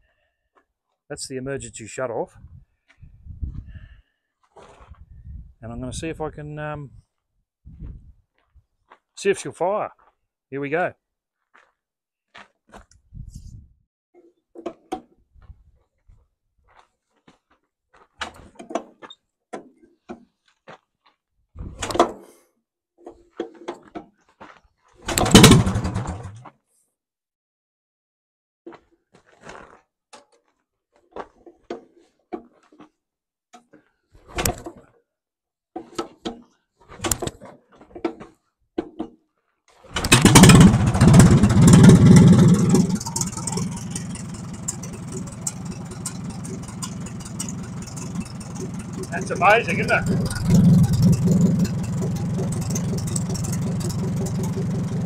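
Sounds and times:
knocks and clatters: 25.1s - 26.4s, 40.0s - 55.0s
tractor engine starting and idling: 25.1s - 26.4s, 40.0s - 55.0s.

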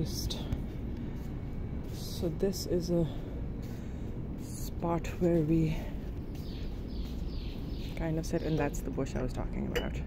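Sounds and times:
low background rumble: 0.0s - 10.0s
birds chirping: 2.0s - 10.0s.

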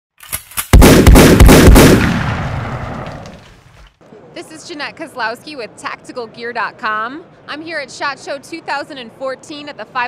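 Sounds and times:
rapid gunshots echoing: 0.7s - 3.4s.

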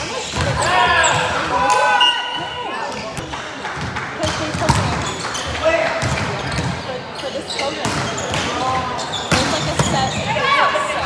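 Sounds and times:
players calling out: 0.0s - 3.4s.

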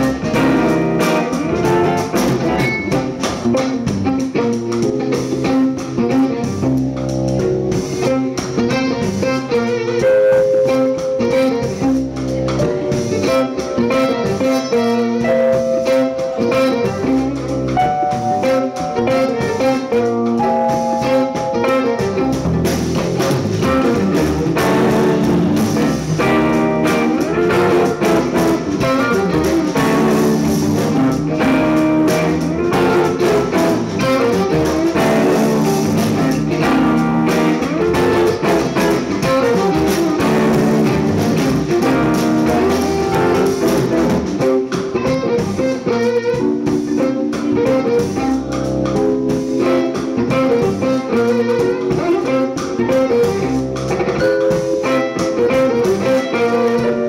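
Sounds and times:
bowed electric violin: 0.0s - 57.0s
drum kit: 0.0s - 57.0s
electric guitar: 0.0s - 57.0s.

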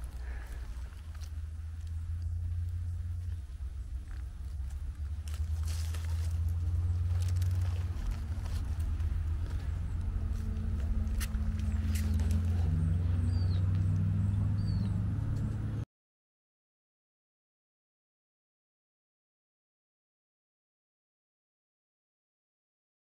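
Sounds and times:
hand rustling dry needles and leaves: 0.0s - 13.2s
steady low rumble: 0.0s - 15.8s
bird chirps: 11.5s - 15.0s.

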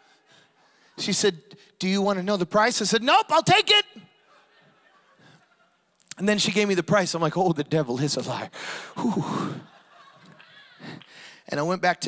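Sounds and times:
faint breath: 8.5s - 9.7s, 10.8s - 11.5s.

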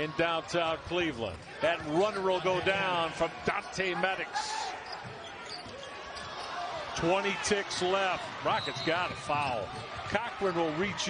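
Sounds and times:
crowd noise hum: 0.0s - 11.0s.

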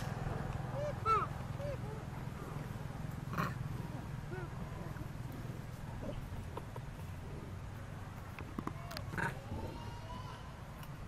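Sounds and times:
steady low hum: 0.0s - 11.0s
macaques calling: 0.6s - 2.4s.

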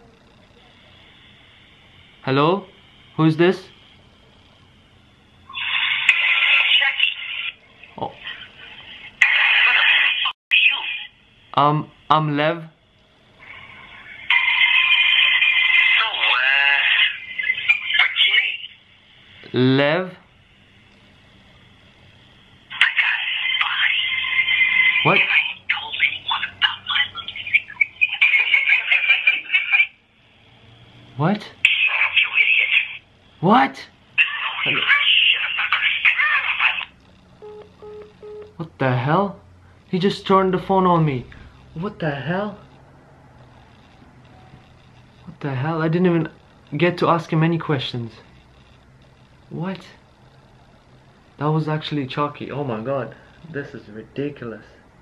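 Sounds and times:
tinny voice through phone speaker: 5.6s - 8.5s, 9.2s - 11.1s, 14.0s - 18.7s, 22.7s - 30.0s, 31.6s - 33.0s, 34.2s - 36.9s
voice through phone loudspeaker: 24.9s - 29.9s, 34.2s - 36.9s
man speaking: 33.4s - 33.9s, 38.6s - 42.6s.

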